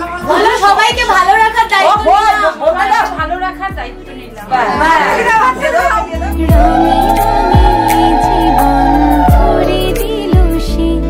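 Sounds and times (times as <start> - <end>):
background music with deep bass: 0.0 - 11.0.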